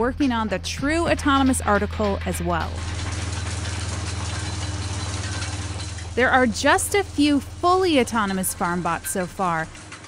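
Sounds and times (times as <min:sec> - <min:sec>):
tractor engine running: 0:00.3 - 0:10.0.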